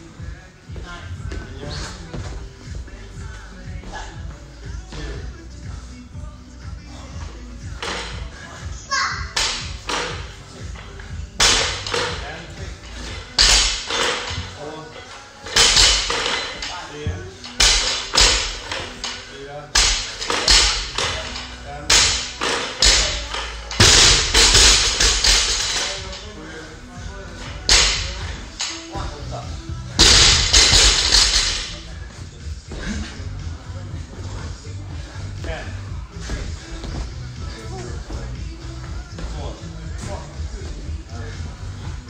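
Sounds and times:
background music: 0:00.0 - 0:42.0
barbell thudding on rubber floor: 0:30.0 - 0:31.8.

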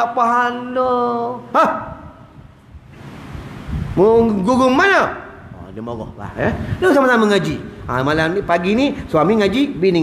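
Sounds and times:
person speaking: 0:00.0 - 0:02.3
breathy microphone hiss: 0:00.0 - 0:10.0.

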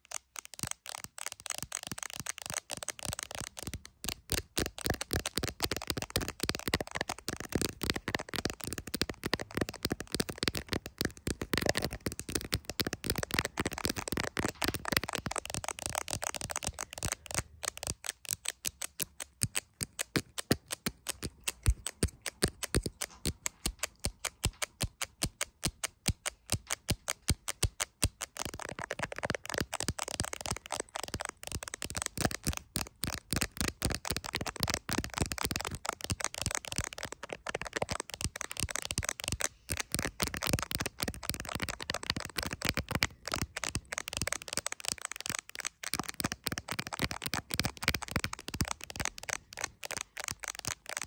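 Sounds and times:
fingernails tapping on plastic phone case: 0:00.4 - 0:51.0.

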